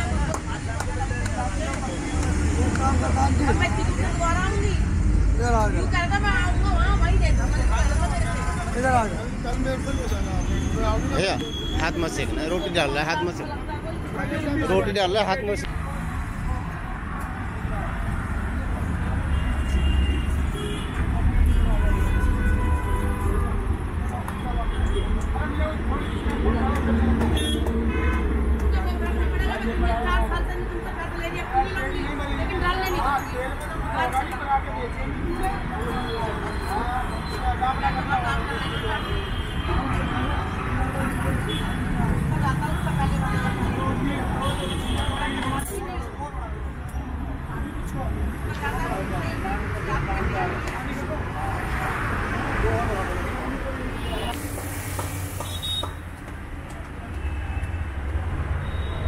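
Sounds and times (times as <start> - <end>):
people talking: 0.0 - 17.0, 24.0 - 55.2
road traffic rumble: 0.0 - 59.0.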